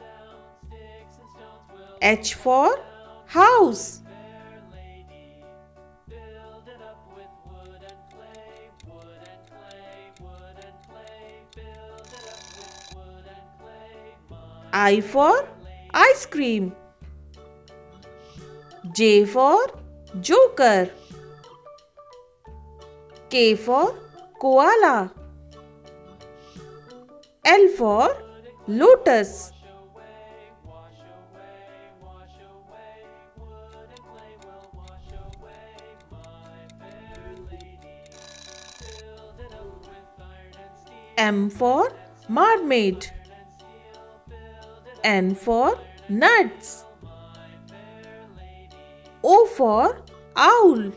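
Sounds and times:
light background music: 0.0s - 50.9s
electronic timer ring: 12.0s - 13.0s, 38.0s - 39.1s.

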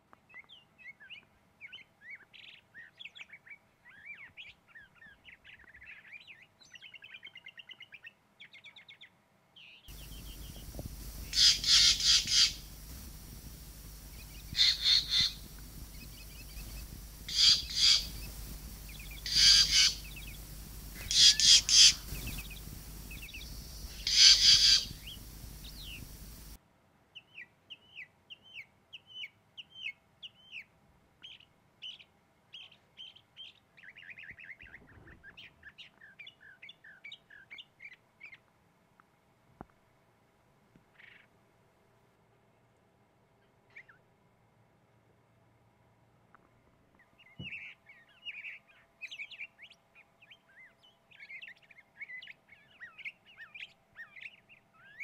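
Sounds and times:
bird chirps and trills: 9.9s - 26.6s
jay harsh pulsed calls: 9.9s - 26.6s.

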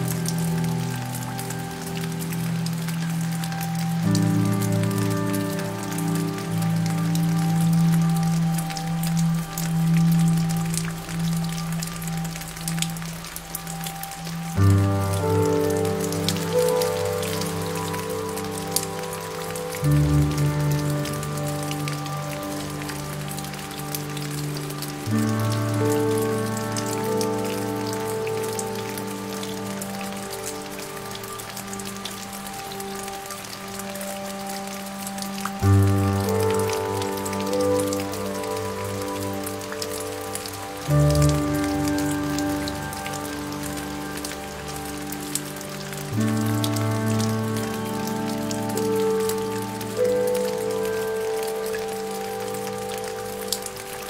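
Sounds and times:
soft slow piano music: 0.0s - 54.0s
steady rain: 0.0s - 54.0s.

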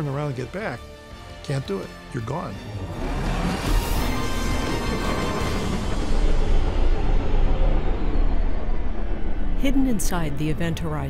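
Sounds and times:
ominous soundtrack music: 0.0s - 11.0s
deep low rumble: 3.0s - 11.0s.

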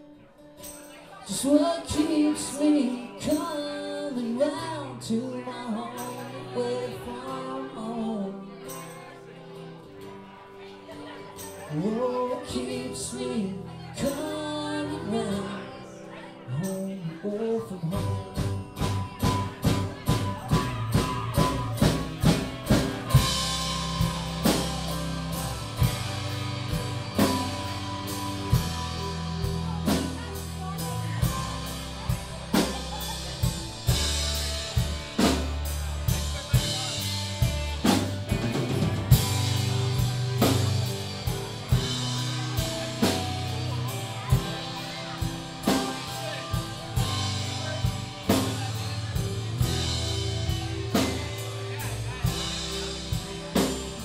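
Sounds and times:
country-rock band playing: 0.0s - 54.0s
drum kit hits: 18.4s - 54.0s.

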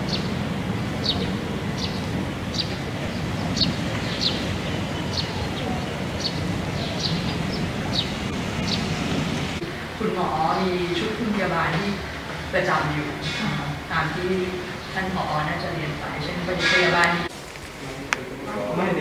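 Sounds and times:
bird chirping: 0.0s - 9.7s
wind on microphone: 0.0s - 9.9s.

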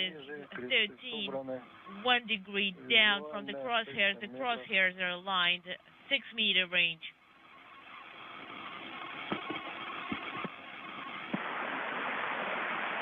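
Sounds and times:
radio channel hiss: 0.0s - 13.0s.

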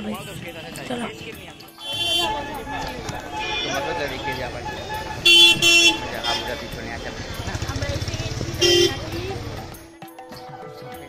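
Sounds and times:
vehicle horn beeping: 0.0s - 7.2s, 8.4s - 9.2s.

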